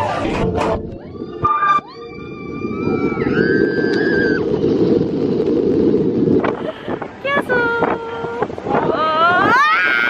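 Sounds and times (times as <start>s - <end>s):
rush of moving train and wind: 0.0s - 10.0s.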